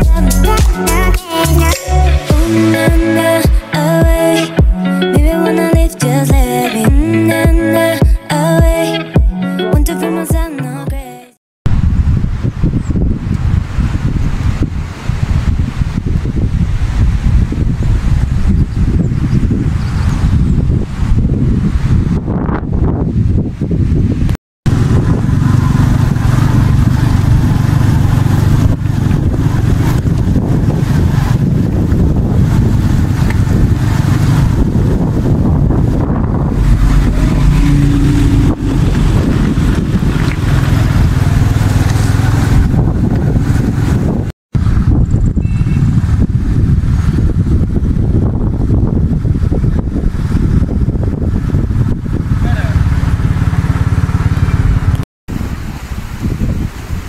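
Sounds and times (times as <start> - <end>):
vehicle engine and road rumble: 11.7 - 57.0.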